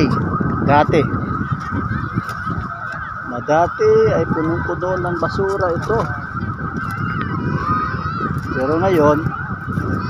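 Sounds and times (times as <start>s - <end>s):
high-pitched drone: 0.0s - 10.0s
wind buffeting microphone: 0.0s - 10.0s.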